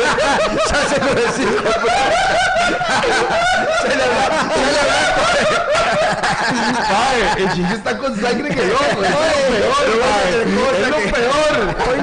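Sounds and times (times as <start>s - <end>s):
men laughing: 0.0s - 12.0s.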